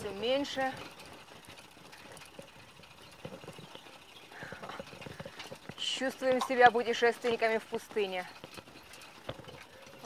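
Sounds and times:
pedal bike clicking and rattling: 0:00.0 - 0:10.0.

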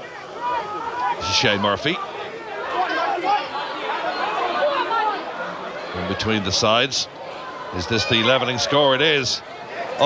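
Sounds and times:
voices shouting and calling out: 0:00.0 - 0:10.0.

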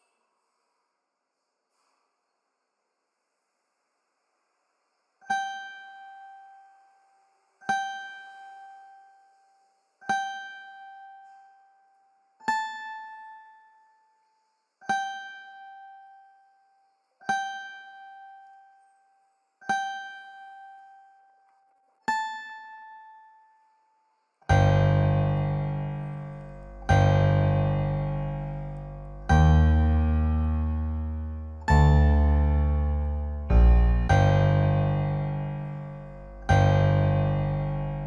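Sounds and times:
plucked instrument notes: 0:24.5 - 0:38.0.

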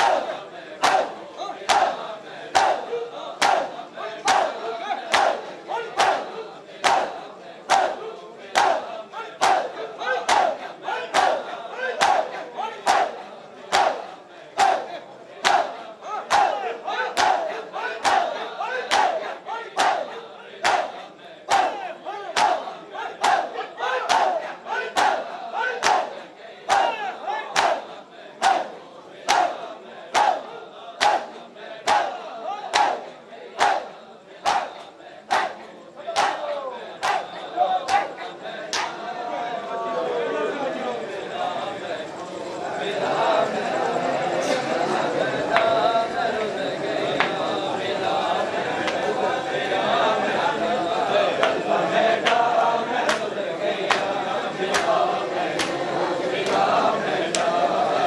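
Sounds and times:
men shouting: 0:00.0 - 0:28.7, 0:29.3 - 0:40.7
hands slapping bare chests: 0:00.8 - 0:01.1, 0:18.9 - 0:19.2, 0:22.4 - 0:22.6, 0:25.8 - 0:26.1, 0:27.6 - 0:27.8, 0:33.6 - 0:33.8, 0:38.7 - 0:39.0.

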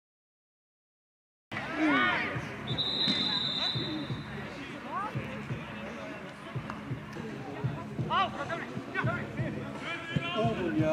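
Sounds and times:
referee's whistle blast: 0:02.7 - 0:04.2
players shouting: 0:08.0 - 0:10.9.

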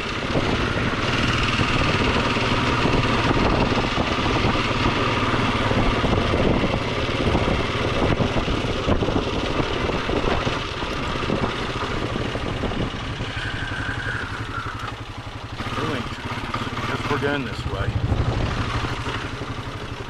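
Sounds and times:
atv engine running: 0:00.0 - 0:20.0
rough-ground clatter: 0:00.0 - 0:20.0.

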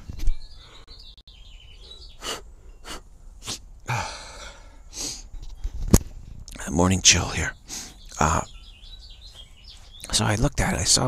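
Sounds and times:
man sniffing and breathing hard: 0:01.7 - 0:05.9, 0:07.6 - 0:08.1
loud breath or cough: 0:02.2 - 0:05.3.

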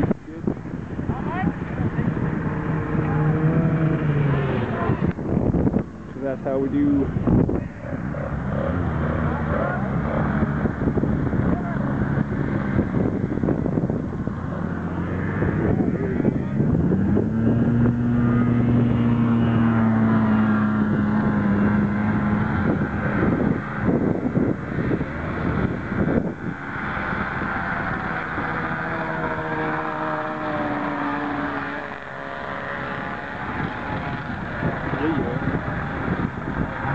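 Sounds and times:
snowmobile engine running hard: 0:00.0 - 0:36.9
higher engine note: 0:01.1 - 0:36.9.

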